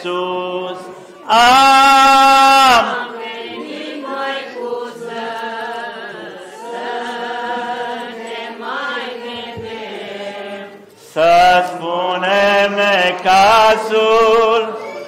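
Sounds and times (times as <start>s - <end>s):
voices chanting in long held notes: 0.0s - 15.0s.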